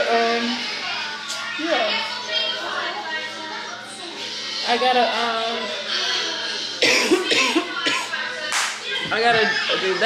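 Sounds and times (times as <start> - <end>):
woman coughing: 6.8 - 8.1.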